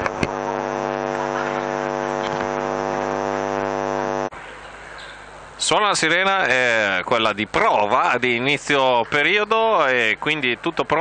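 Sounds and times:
game horn long blast: 0.0 - 4.3.

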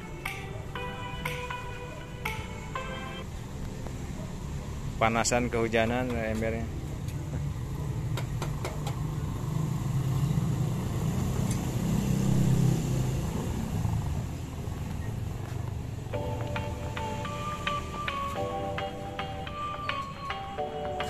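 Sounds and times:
music with chime-like tones: 0.0 - 3.3, 16.2 - 21.0
motor vehicle passing: 7.6 - 20.6.

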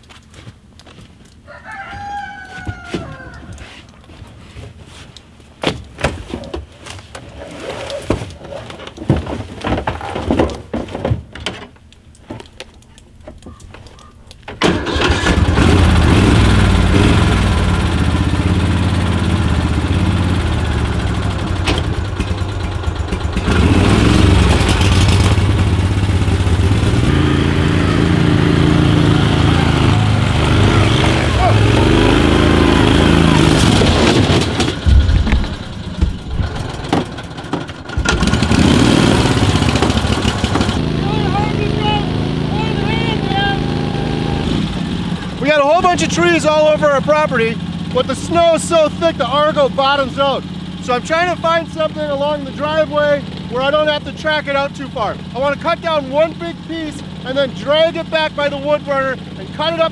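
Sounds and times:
vehicle engine starting and revving: 14.6 - 59.9.

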